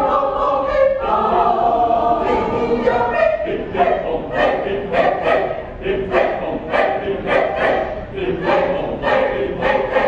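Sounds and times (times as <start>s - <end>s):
mixed choir singing folk song: 0.0s - 10.0s.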